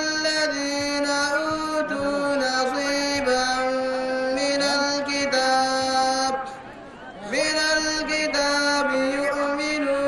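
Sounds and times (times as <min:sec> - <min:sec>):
person chanting: 0:00.0 - 0:06.5, 0:07.2 - 0:10.0.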